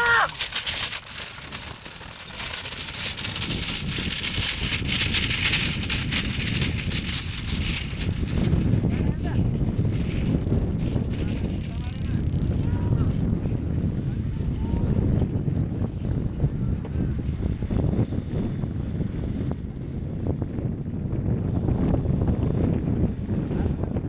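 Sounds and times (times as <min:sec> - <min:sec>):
cart rattling over rough dirt: 0:00.0 - 0:16.4
wind rumble on microphone: 0:00.0 - 0:24.0.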